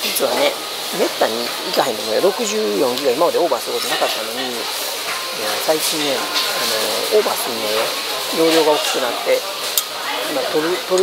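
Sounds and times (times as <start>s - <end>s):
kitchen noise hiss: 0.0s - 11.0s
people talking: 0.0s - 11.0s.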